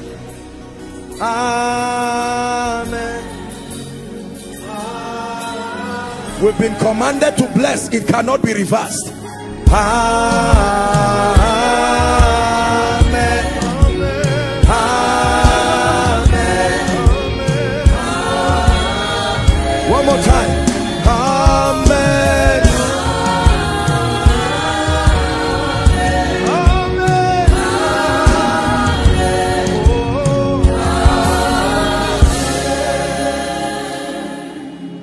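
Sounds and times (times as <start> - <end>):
gospel singing: 0.0 - 35.0
low thumping beat: 9.7 - 32.6.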